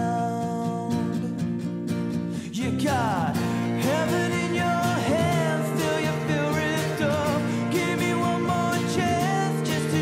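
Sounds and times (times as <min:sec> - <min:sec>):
strummed acoustic guitars: 0:00.0 - 0:10.0
sliding melody line: 0:03.2 - 0:10.0.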